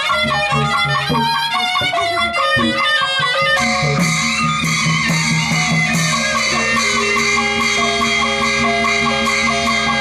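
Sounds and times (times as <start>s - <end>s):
traditional melody with quick beat: 0.0s - 10.0s.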